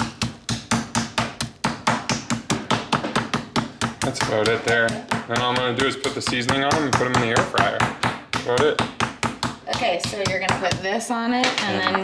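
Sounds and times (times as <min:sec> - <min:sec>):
meat mallet pounding on cutting board: 0:00.0 - 0:11.1.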